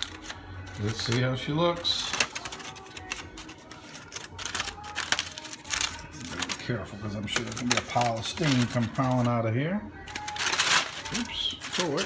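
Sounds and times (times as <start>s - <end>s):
aluminium foil crinkling: 0.0s - 9.4s, 10.0s - 12.0s.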